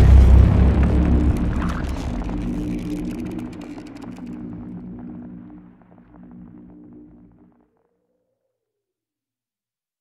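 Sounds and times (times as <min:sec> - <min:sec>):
low drone of tones: 0:00.0 - 0:07.9
scattered crackles: 0:00.0 - 0:07.9.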